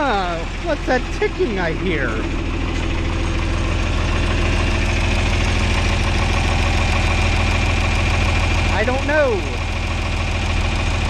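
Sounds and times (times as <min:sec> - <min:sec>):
diesel engine idling: 0:00.0 - 0:11.0
engine ticking: 0:00.0 - 0:11.0.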